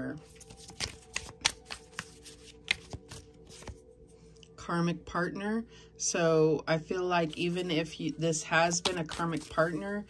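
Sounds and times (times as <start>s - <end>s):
cards clicking and tapping: 0.4s - 3.8s, 8.7s - 9.8s.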